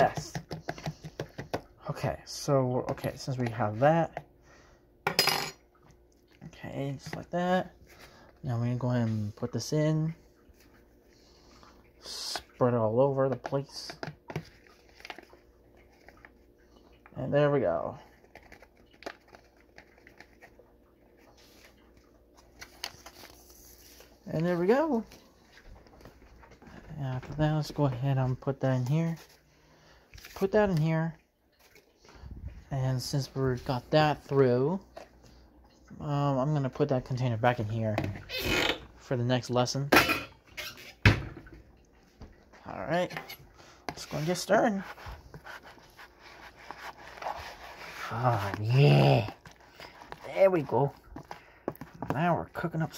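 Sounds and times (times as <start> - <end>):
paper packet crinkling: 17.8 - 24.3
spoon scraping plastic container: 43.1 - 52.1.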